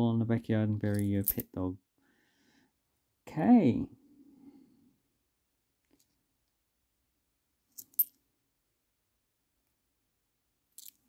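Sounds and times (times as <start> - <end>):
coins clicking together: 10.8 - 11.0.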